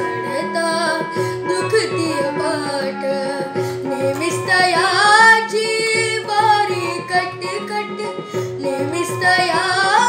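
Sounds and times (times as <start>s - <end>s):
boy singing devotional song: 0.0s - 10.0s
instrumental accompaniment: 0.0s - 10.0s.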